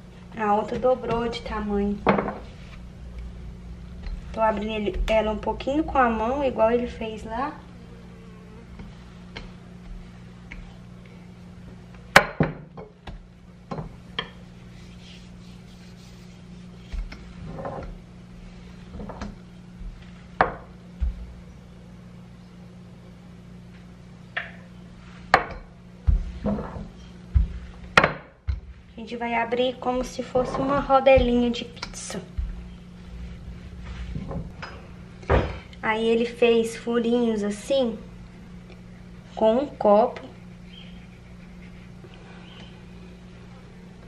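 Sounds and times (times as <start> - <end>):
rolling pin rolling dough: 12.9 - 21.4, 25.0 - 28.9, 29.5 - 34.6.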